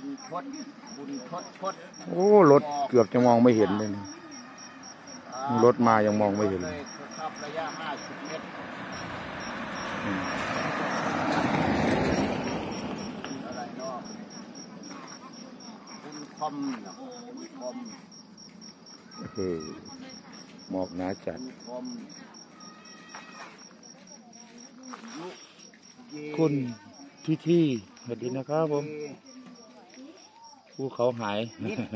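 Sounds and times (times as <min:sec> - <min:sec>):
truck driving past: 0:04.6 - 0:16.5.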